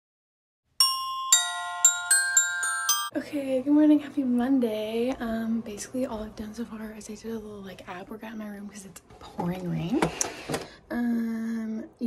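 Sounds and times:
bell-like jingle notes: 0:00.8 - 0:03.1.

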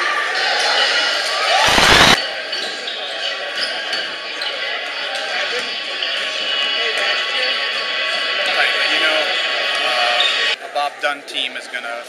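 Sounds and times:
echoing crowd chatter: 0:00.0 - 0:12.0
loud burst of noise: 0:01.4 - 0:02.2.

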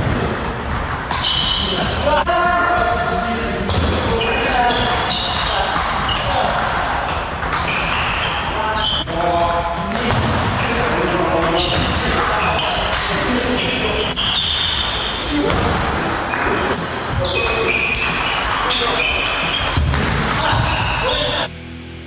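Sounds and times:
background music: 0:21.5 - 0:22.0.

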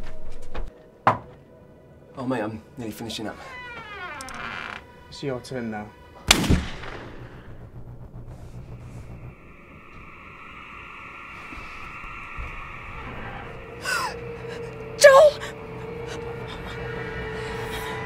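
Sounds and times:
low drone: 0:03.5 - 0:18.0
woman gasping: 0:13.8 - 0:18.0.

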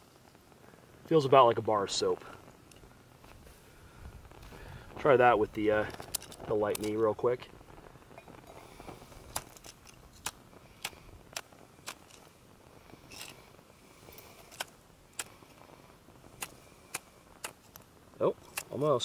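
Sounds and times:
fire-starter striker clicks: 0:05.9 - 0:07.1, 0:09.2 - 0:12.3, 0:16.4 - 0:18.9.

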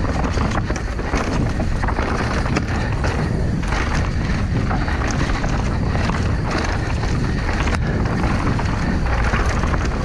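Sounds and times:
bike rattling over bumps: 0:00.0 - 0:10.0
bike tyres on dirt track: 0:00.0 - 0:10.0
wind on microphone: 0:00.0 - 0:10.0.

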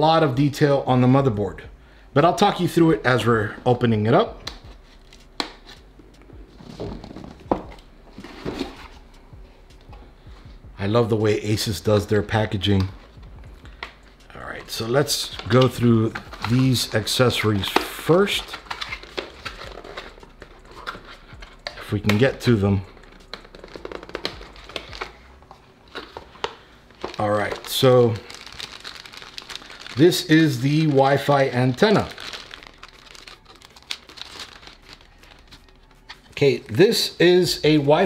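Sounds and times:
cardboard packaging handled: 0:06.4 - 0:09.1, 0:12.7 - 0:36.5
cardboard rubbing and rustling: 0:06.5 - 0:09.0.

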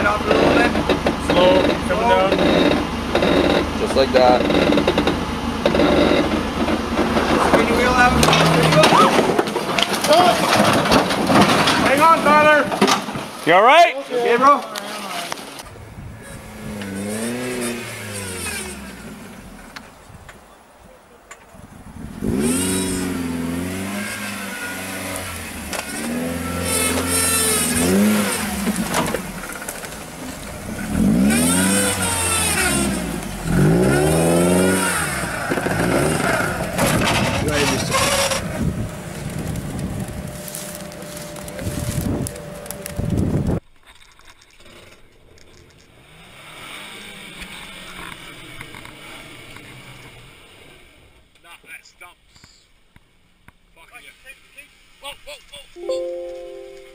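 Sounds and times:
off-road engines revving hard: 0:00.0 - 0:19.8, 0:21.9 - 0:43.1, 0:45.9 - 0:51.2.

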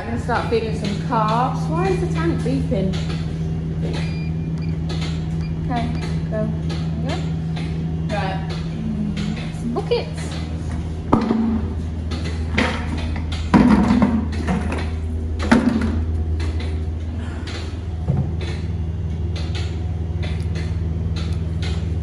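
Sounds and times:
low machinery hum: 0:00.0 - 0:22.0
plastic buckets knocking: 0:12.5 - 0:16.1.

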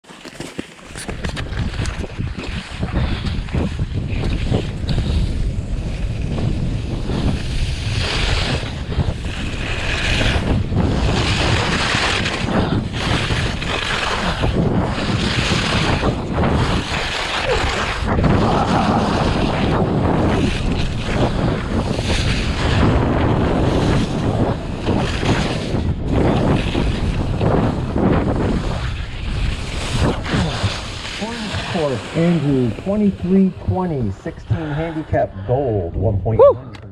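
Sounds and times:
skis scraping on packed snow: 0:00.0 - 0:35.0
wind buffeting microphone: 0:00.9 - 0:36.9.

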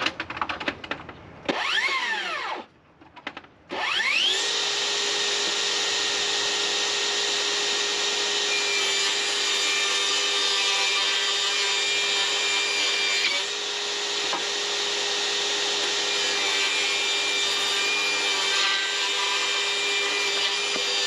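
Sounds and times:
saw cutting plywood: 0:01.5 - 0:02.7, 0:03.7 - 0:21.0
table saw motor whining: 0:01.5 - 0:02.7, 0:03.7 - 0:21.0.

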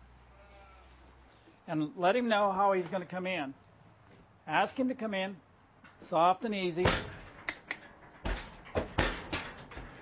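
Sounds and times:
hooves knocking on trailer floor: 0:06.7 - 0:10.0.

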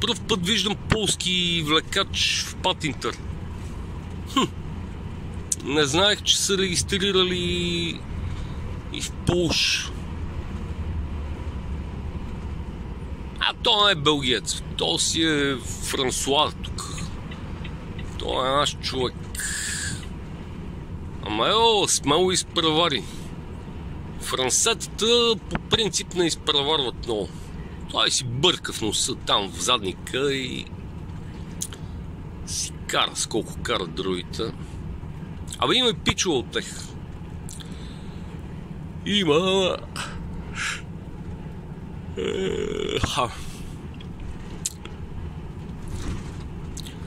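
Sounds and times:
diesel engine and road rumble: 0:00.0 - 0:47.0
man's held vocal sound: 0:42.2 - 0:43.4.

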